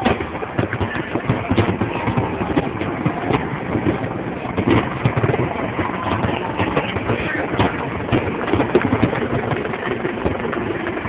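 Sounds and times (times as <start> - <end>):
faint crowd voices: 0.0 - 11.0
fireworks popping and banging: 0.0 - 11.0.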